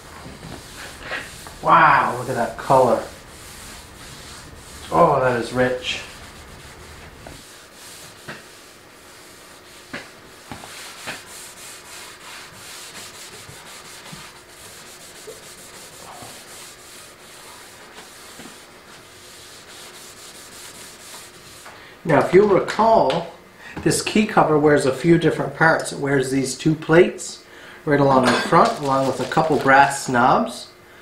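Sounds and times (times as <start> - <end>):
cloth rubbing wood: 0.0 - 21.6, 28.5 - 29.8.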